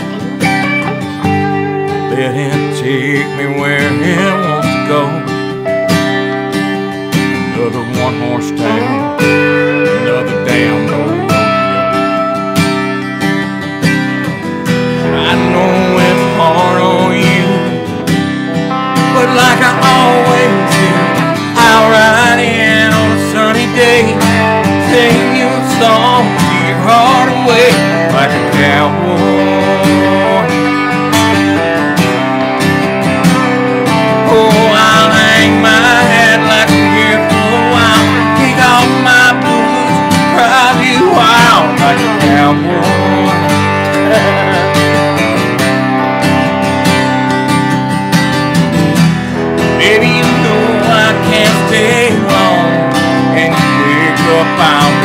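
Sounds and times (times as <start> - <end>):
acoustic guitar strumming chords: 0.0 - 55.0
electric guitar lead lines: 0.0 - 55.0.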